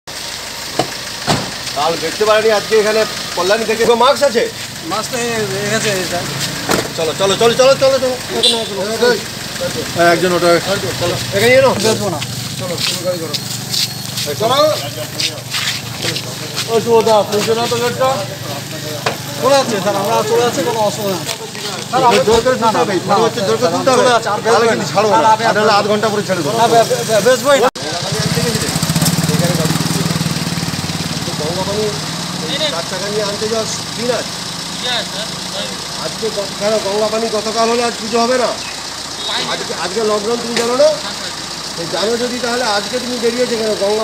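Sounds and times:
street noise hiss: 0.1s - 44.0s
men calling out: 2.0s - 44.0s
man's voice: 14.2s - 30.1s.

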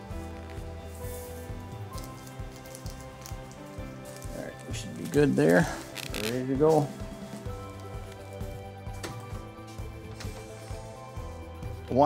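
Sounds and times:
music with sustained chords: 0.0s - 12.0s.

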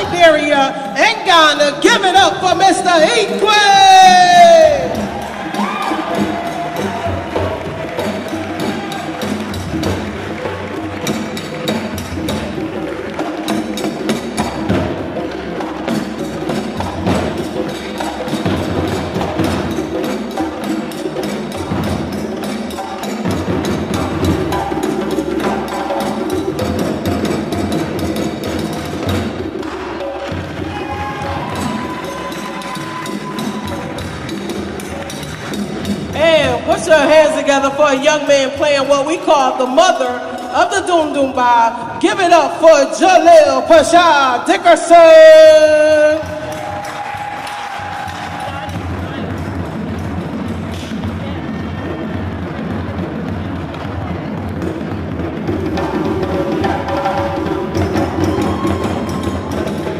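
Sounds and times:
drum ensemble playing: 0.0s - 59.9s.

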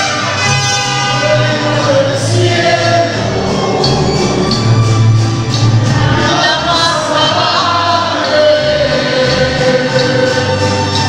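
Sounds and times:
mariachi band playing: 0.0s - 11.0s
voices singing held notes: 0.0s - 11.0s.

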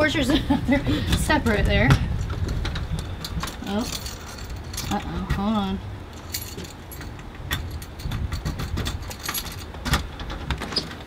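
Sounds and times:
low rumble: 0.0s - 10.3s
keys jangling: 3.2s - 5.1s, 6.1s - 10.1s
key scraping in door lock: 6.2s - 11.0s.

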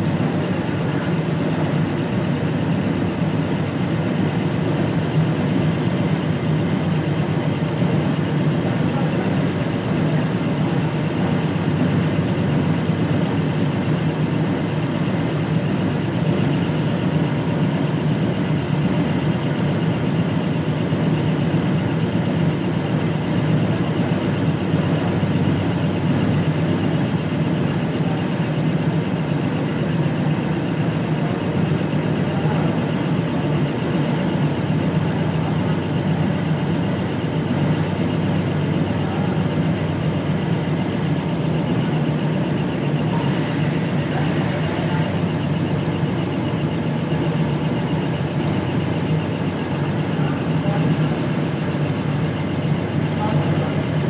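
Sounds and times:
industrial sewing machine running: 20.8s - 54.0s.

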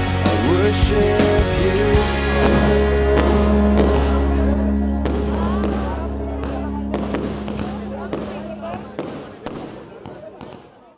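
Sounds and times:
music: 0.0s - 9.6s
crowd voices: 0.0s - 10.9s
fireworks popping and crackling: 2.4s - 4.4s, 5.0s - 10.9s.

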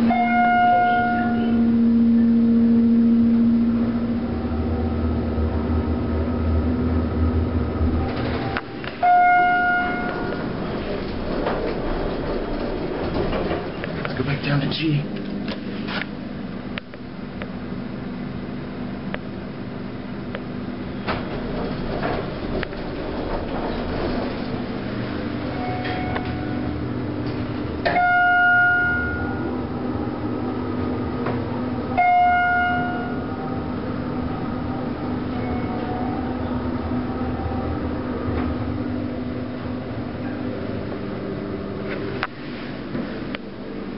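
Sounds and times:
elevator chime tones: 0.0s - 5.8s, 8.0s - 10.9s, 25.3s - 26.8s, 27.9s - 29.6s, 31.9s - 38.3s
elevator low hum: 0.0s - 43.9s.

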